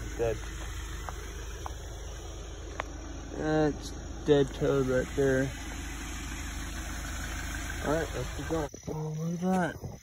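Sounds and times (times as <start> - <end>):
car engine idling: 0.0 - 9.8.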